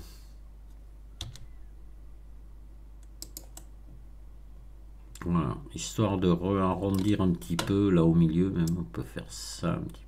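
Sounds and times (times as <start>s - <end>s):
low steady hum: 0.0s - 10.0s
computer keyboard clicks: 3.0s - 3.7s.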